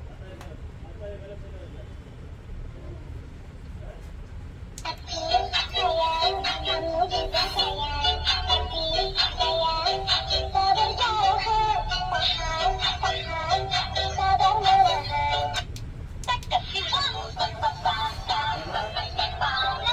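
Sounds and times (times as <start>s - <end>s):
electronic song from small speaker: 4.8s - 19.9s.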